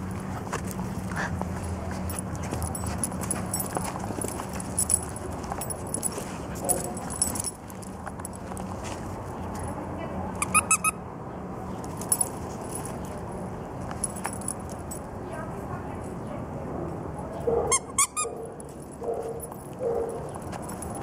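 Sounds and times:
dogs playing: 0.0s - 9.8s, 17.3s - 21.0s
steady low hum: 0.0s - 10.2s
collar tags jingling: 0.0s - 10.9s, 11.6s - 15.4s, 17.3s - 21.0s
high squeaks: 10.4s - 11.0s, 17.7s - 18.4s.

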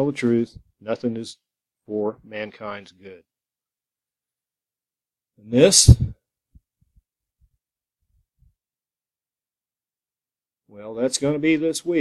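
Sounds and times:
man speaking: 0.0s - 3.2s, 5.4s - 6.2s, 10.7s - 12.0s.

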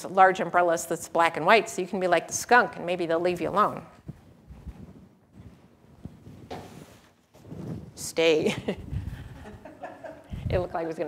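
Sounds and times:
umbrella fabric rustling: 3.4s - 8.1s.

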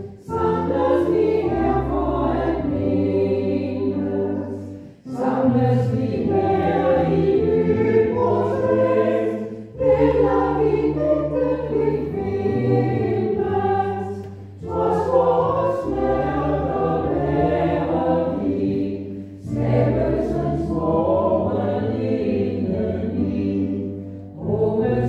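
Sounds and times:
church choir singing a hymn: 0.0s - 25.0s.

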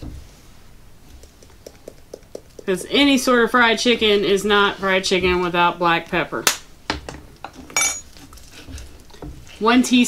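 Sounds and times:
kitchenware clink: 7.7s - 8.1s.

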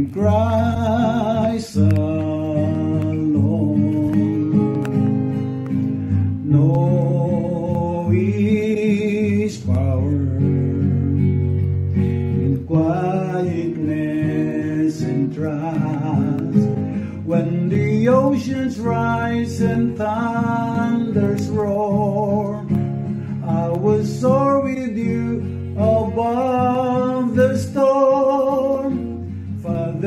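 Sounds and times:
acoustic guitar: 0.0s - 30.0s
man singing: 0.0s - 30.0s.

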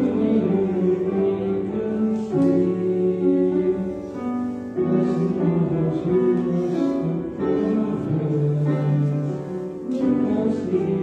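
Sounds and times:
keyboard accompaniment: 0.0s - 11.0s
voices singing a hymn: 0.0s - 11.0s.

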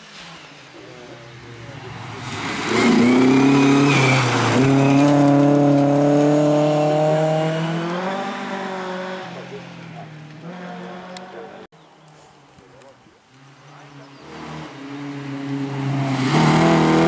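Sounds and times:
rally car engine accelerating: 1.0s - 11.7s, 13.4s - 17.0s.

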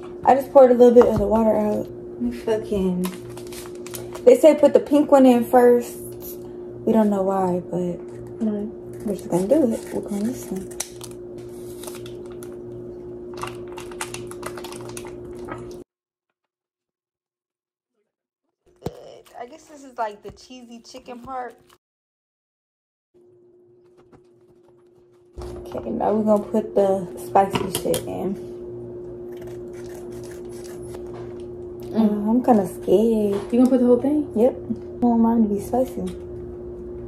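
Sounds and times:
steady low hum: 0.0s - 15.9s, 23.2s - 37.0s
plastic sachet crinkling: 3.0s - 4.2s, 9.8s - 12.6s, 13.3s - 15.8s.

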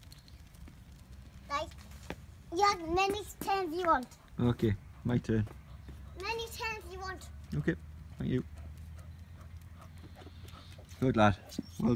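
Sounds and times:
dog paws ticking on driveway: 0.0s - 11.9s.

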